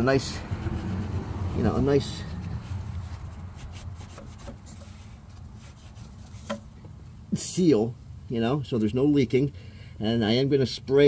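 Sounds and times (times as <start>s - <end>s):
rag rubbing on metal: 0.0s - 6.8s.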